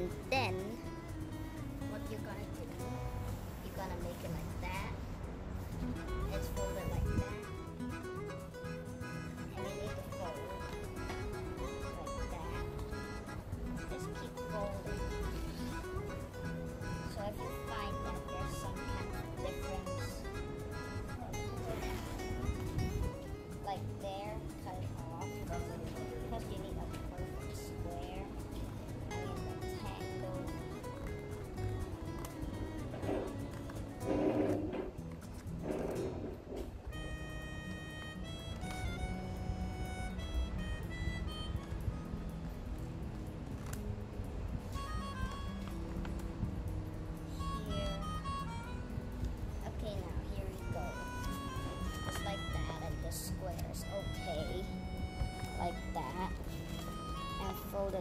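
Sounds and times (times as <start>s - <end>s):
voice: 0.0s - 0.9s, 1.8s - 3.0s, 3.6s - 5.1s, 6.2s - 7.4s, 9.4s - 10.9s, 11.5s - 12.7s, 13.9s - 15.4s, 17.0s - 20.3s, 23.5s - 28.4s, 29.7s - 30.6s, 47.6s - 48.2s, 49.6s - 51.0s, 52.0s - 54.7s, 55.6s - 56.4s, 57.4s - 58.0s
melody of short stepped notes: 0.0s - 58.0s.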